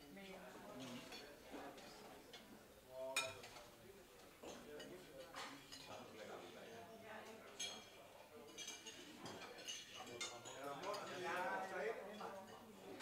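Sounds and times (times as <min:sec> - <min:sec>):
murmur of diners chatting: 0:00.0 - 0:13.0
clinking tongs dishes and plates: 0:03.1 - 0:11.2.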